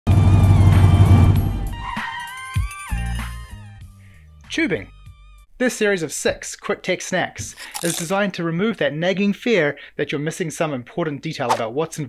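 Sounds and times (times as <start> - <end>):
music: 0.1 - 5.5.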